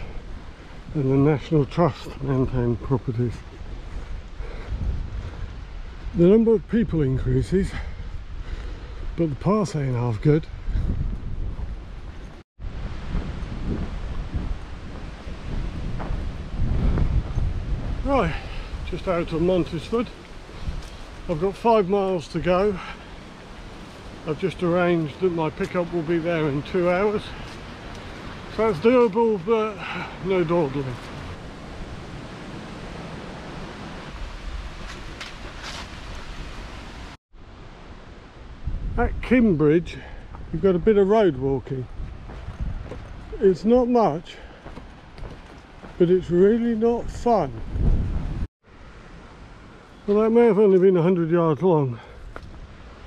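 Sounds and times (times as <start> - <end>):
wind buffeting microphone: 0.0 - 48.5.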